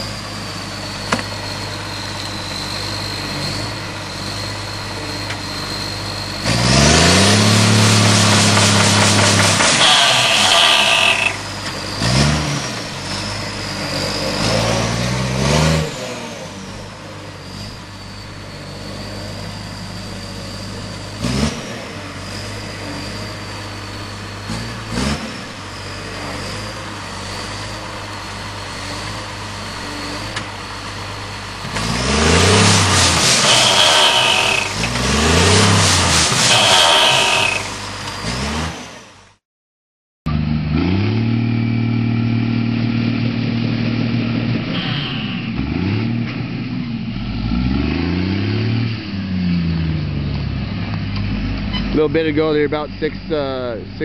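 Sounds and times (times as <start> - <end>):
tree shaker engine running and revving: 0.0 - 38.8.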